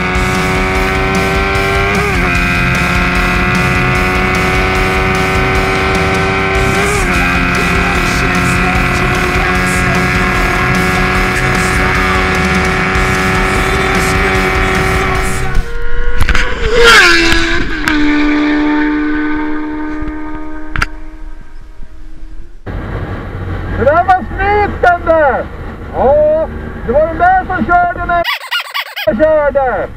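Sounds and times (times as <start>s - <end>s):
motorcycle engine at high revs: 0.0s - 21.2s.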